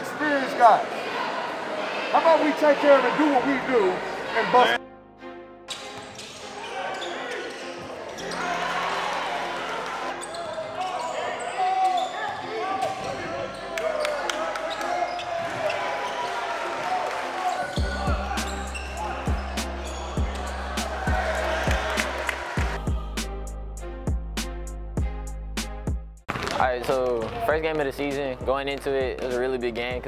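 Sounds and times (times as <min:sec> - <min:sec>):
spectators chattering and calling out: 0:14.6 - 0:23.1
low music beat: 0:17.8 - 0:26.2.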